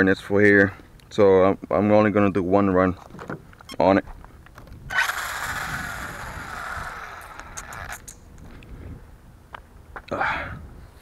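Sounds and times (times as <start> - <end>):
electric motor whine: 4.9 - 8.1.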